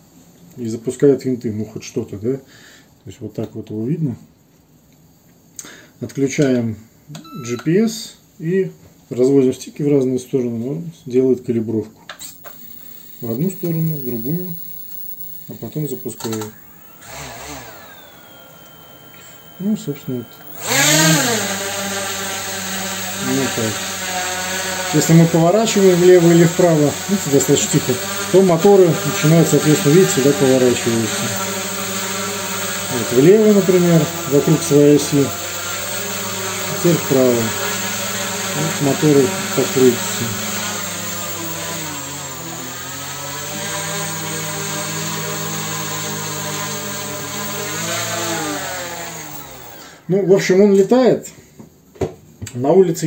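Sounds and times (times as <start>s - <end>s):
drone propellers whirring: 12.2s - 42.6s.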